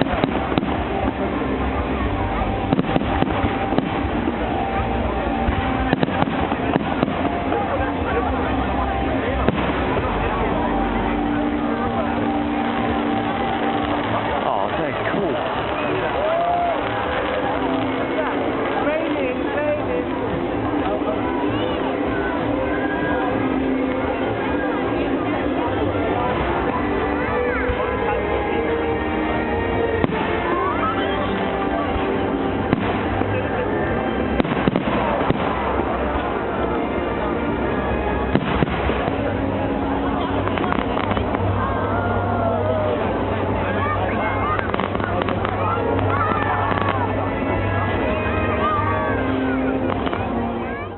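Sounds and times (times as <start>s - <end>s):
fireworks bursting: 0.0s - 42.2s, 42.9s - 50.6s
crowd chattering: 0.0s - 50.9s
steady din: 0.0s - 50.9s.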